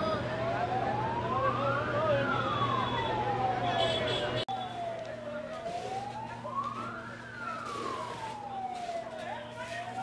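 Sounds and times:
fire engine siren wailing: 0.0s - 10.0s.

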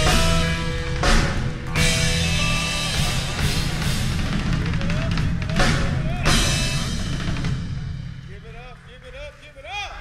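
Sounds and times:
electric guitar: 0.0s - 8.1s
drum kit beat: 0.0s - 9.5s.

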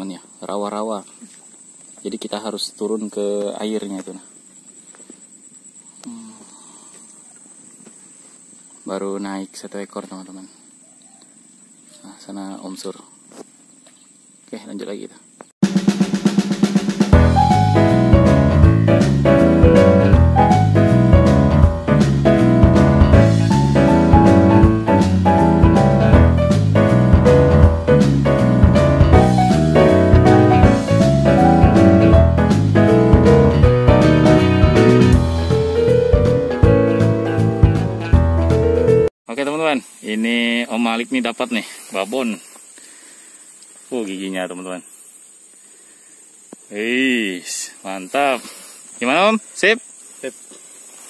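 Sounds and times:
man talking: 2.0s - 4.3s, 12.0s - 13.1s, 14.5s - 15.3s, 39.3s - 42.5s, 43.9s - 44.8s, 46.7s - 50.4s
drum roll: 15.6s - 39.0s
background music: 15.6s - 39.1s.

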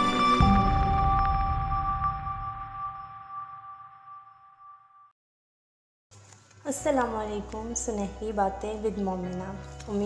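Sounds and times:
low music: 0.0s - 3.1s, 6.7s - 10.0s.

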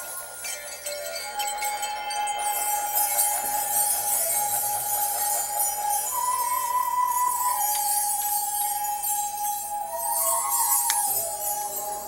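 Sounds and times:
jingling chiming percussion: 0.0s - 12.0s.

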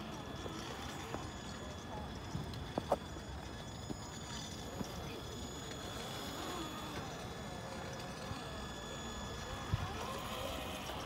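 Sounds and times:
electric motor whining: 0.0s - 11.0s.

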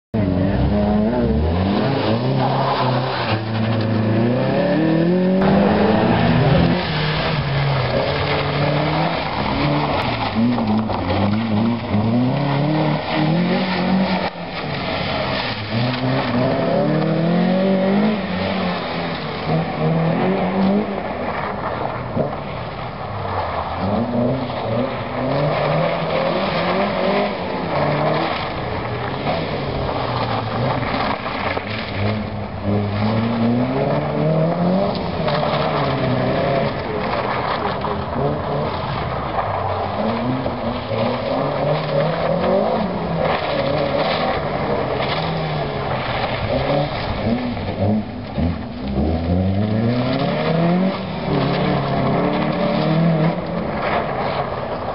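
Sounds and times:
car engine revving: 0.2s - 54.9s.

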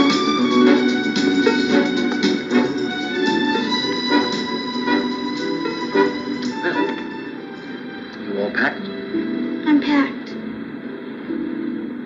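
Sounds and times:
soft music through tv speaker: 0.0s - 12.0s.

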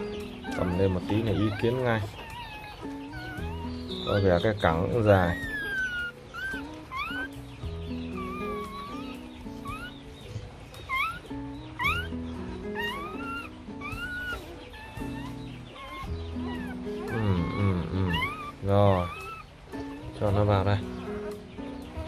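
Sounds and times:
background music: 0.0s - 22.0s
puppy squealing: 0.0s - 22.0s.

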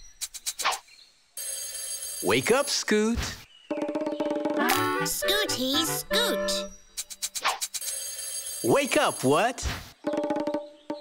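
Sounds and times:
alarm clock bell ringing: 1.4s - 2.8s, 7.8s - 9.4s.

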